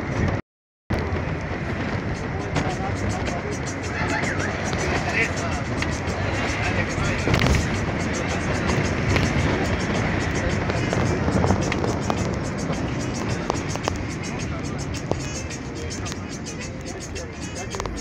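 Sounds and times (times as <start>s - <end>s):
road and wind noise: 0.0s - 18.0s
indistinct voices: 0.9s - 18.0s
music: 1.9s - 18.0s.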